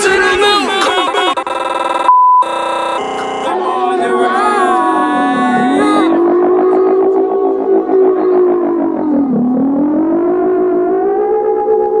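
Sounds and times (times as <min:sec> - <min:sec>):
wavering synthesizer tone: 0:01.0 - 0:12.0.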